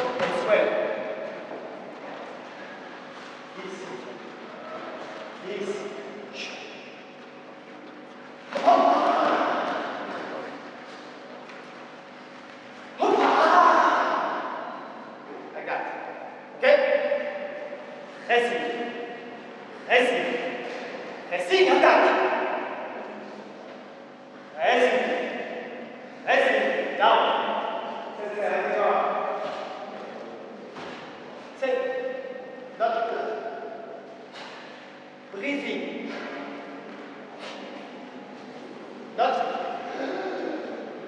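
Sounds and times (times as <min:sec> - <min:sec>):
loud shout in a hall: 0:08.5 - 0:10.4, 0:13.0 - 0:17.8
faint voices: 0:36.1 - 0:41.0.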